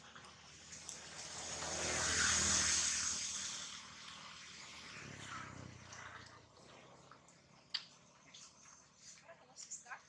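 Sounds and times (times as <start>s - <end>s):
motor vehicle passing by: 0.0s - 9.1s.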